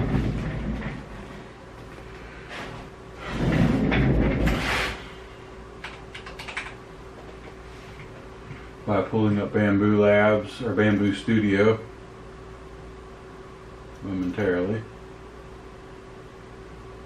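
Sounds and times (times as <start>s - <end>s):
noisy handling sound: 0.0s - 5.2s, 5.8s - 8.7s
faint steady hum: 0.0s - 17.0s
keyboard and mouse clicking: 5.8s - 6.8s.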